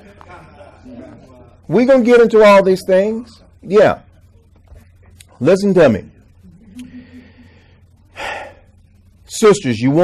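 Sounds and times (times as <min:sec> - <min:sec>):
man speaking: 0:01.0 - 0:04.2, 0:05.4 - 0:06.3
man inhaling: 0:06.8 - 0:08.7.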